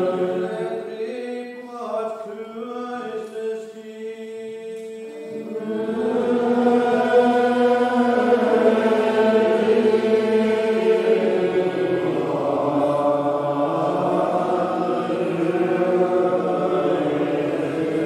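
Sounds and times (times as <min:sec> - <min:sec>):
congregation singing unaccompanied: 0:00.0 - 0:18.0.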